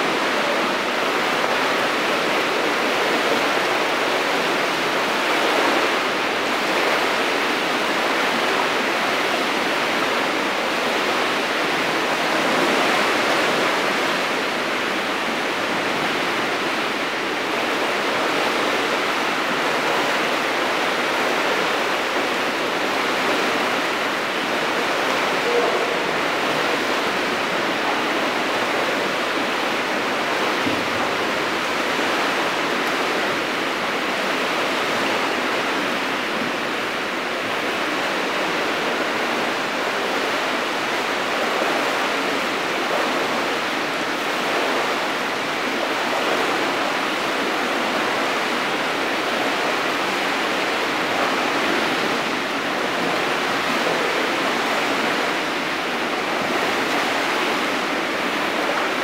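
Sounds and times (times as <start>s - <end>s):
echoing pool hall noise: 10.2s - 41.3s.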